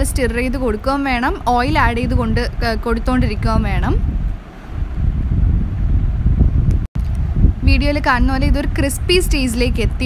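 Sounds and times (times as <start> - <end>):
low rumble on microphone: 0.0 - 10.0.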